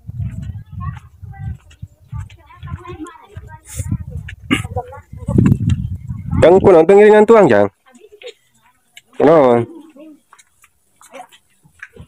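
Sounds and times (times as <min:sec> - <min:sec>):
people talking: 0:00.2 - 0:10.4, 0:11.0 - 0:12.0.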